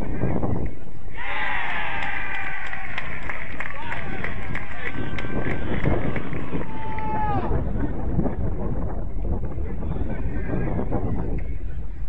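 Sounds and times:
wind rumbling on microphone: 0:00.0 - 0:12.0
footballers shouting: 0:01.1 - 0:07.6.

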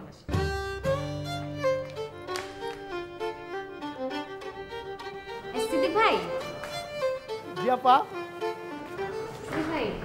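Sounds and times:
slow instrumental melody: 0:00.3 - 0:09.6.

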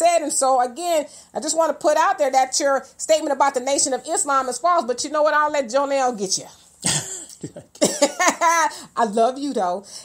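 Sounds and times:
woman laughing: 0:07.0 - 0:08.6.

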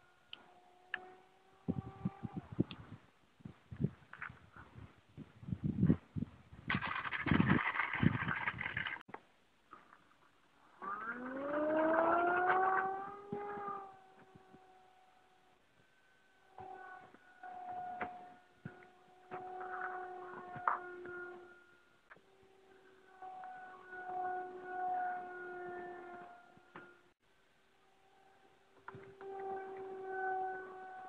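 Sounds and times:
model airplane motor whine: 0:00.0 - 0:03.0, 0:10.7 - 0:31.0.

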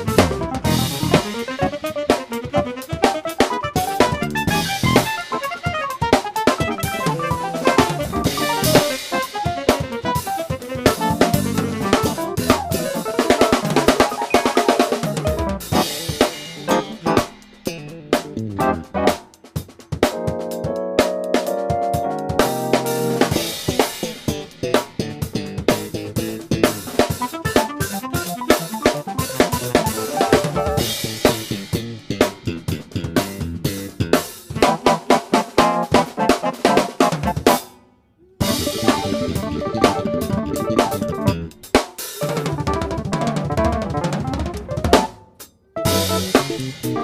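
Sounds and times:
keyboard playing: 0:00.0 - 0:19.2, 0:20.0 - 0:24.3, 0:26.7 - 0:31.0, 0:34.6 - 0:37.6, 0:38.4 - 0:41.6, 0:42.2 - 0:47.0
funk band jamming: 0:00.0 - 0:37.7, 0:38.4 - 0:47.0
snare and bass drum: 0:00.0 - 0:37.7, 0:38.4 - 0:45.2, 0:45.8 - 0:47.0.

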